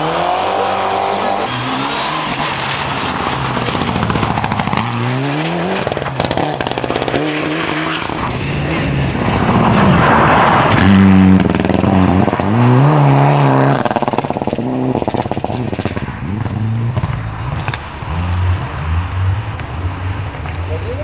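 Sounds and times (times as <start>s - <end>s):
rally car engine revving: 0.0s - 21.0s.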